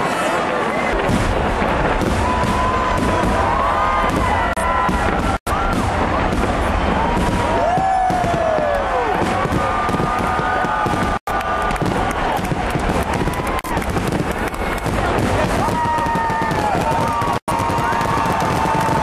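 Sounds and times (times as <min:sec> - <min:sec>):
crowd calling and shouting: 0:00.0 - 0:19.0
fireworks bangs and crackling: 0:00.0 - 0:19.0.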